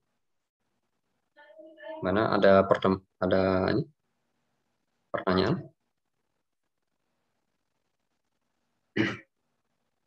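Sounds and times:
person clearing throat: 9.0s - 9.3s.

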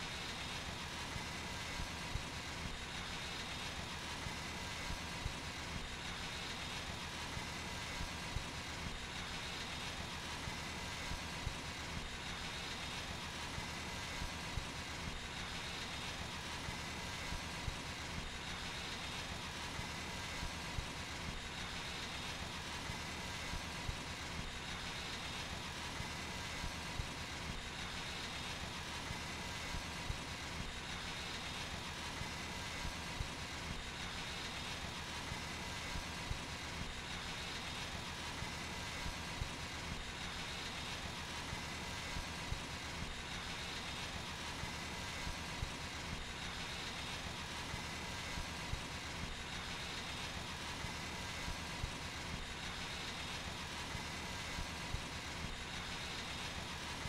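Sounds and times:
pressure washer engine running: 11.7s - 14.2s, 23.8s - 57.0s.

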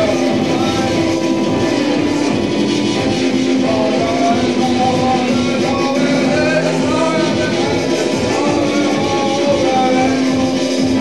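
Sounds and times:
person singing into microphone: 0.0s - 11.0s.

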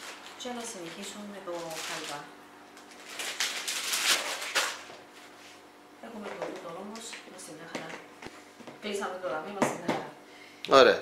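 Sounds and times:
plastic zip bag crinkling: 0.0s - 5.0s.

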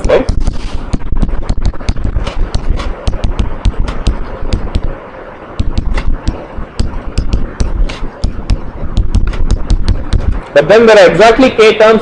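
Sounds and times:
chalk tapping on blackboard: 5.6s - 10.4s.

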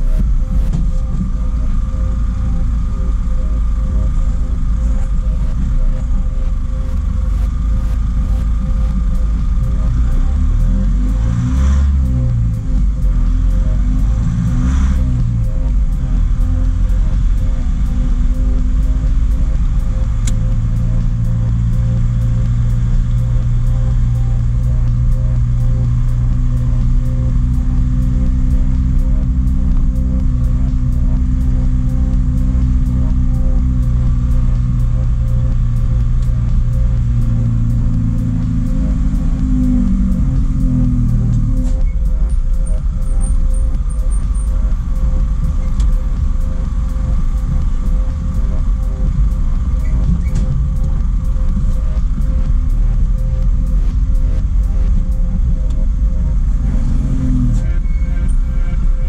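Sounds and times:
diesel engine from inside cab: 0.0s - 59.0s.

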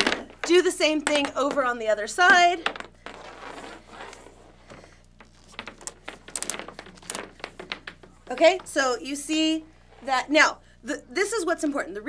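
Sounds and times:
plastic pipe rustling and scraping: 0.0s - 10.3s.

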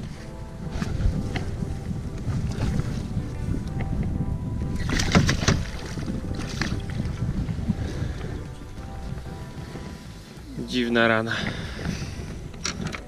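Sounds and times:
water slapping boat hull: 0.0s - 10.4s
faint background music: 0.0s - 13.0s
wind rumbling on microphone: 0.0s - 13.0s
fish splashing: 4.8s - 8.4s.

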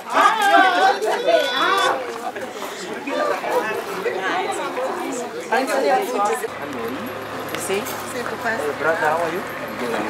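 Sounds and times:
people talking: 0.0s - 10.0s.

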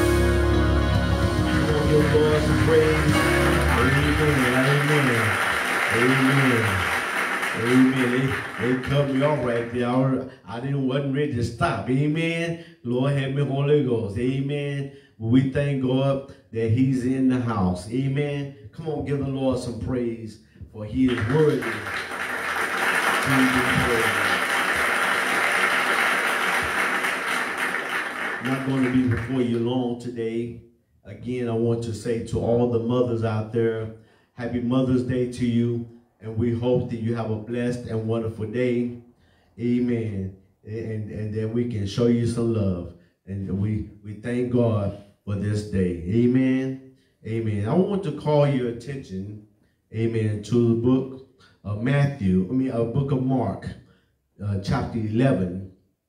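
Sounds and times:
backing track chords and bass: 0.0s - 5.2s
clapping: 1.4s - 9.8s, 21.1s - 29.7s.

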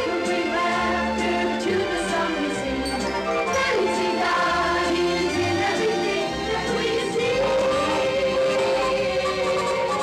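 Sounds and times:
choir singing cheerful song: 0.0s - 10.0s.

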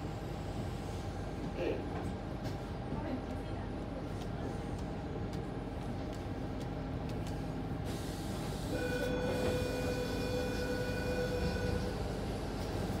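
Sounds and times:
wheels rumbling on rail: 0.0s - 13.0s.

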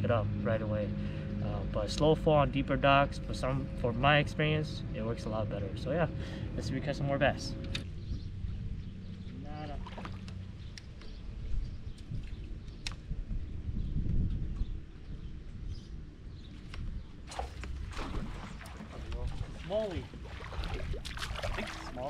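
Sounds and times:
wind rumbling on microphone: 3.2s - 22.0s.

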